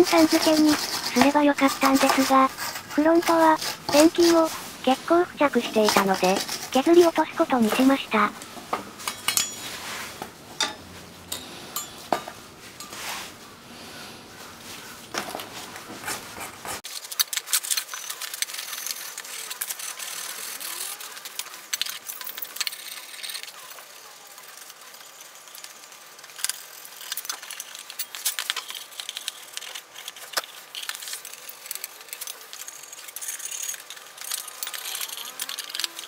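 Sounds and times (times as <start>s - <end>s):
scraping on metal: 0.0s - 8.3s
wire brush scraping metal: 0.0s - 8.3s, 26.5s - 36.0s
metal clinks and clanks: 9.0s - 9.7s.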